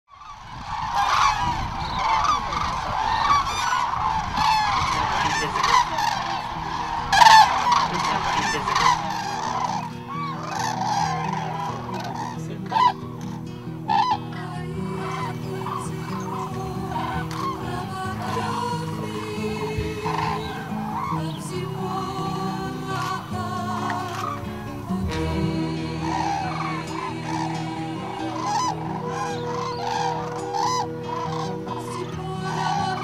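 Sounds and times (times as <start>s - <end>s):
cranes trumpeting calls: 0.1s - 33.0s
soft music with held tones: 0.2s - 33.0s.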